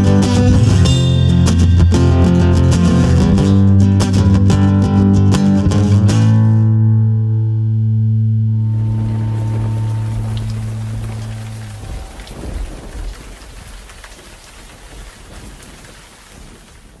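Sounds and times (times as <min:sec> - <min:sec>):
bass and acoustic guitar chord: 0:00.0 - 0:12.9
rain-like hiss with crackles: 0:08.6 - 0:17.0.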